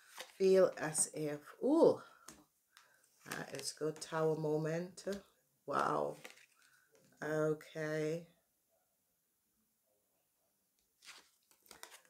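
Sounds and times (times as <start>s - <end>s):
cards rustling: 0.0s - 1.1s, 6.1s - 7.2s, 11.0s - 12.0s.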